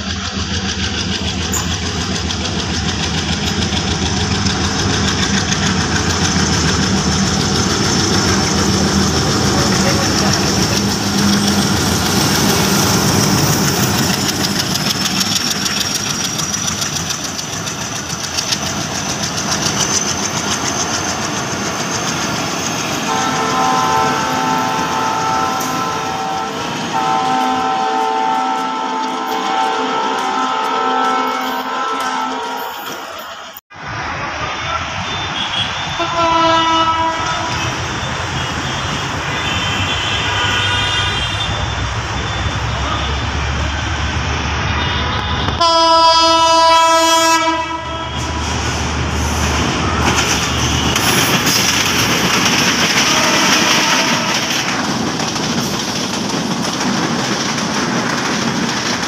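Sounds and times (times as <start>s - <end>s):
train wheels clattering on rails: 0.0s - 33.3s, 48.1s - 59.0s
diesel locomotive engine drone: 0.0s - 59.0s.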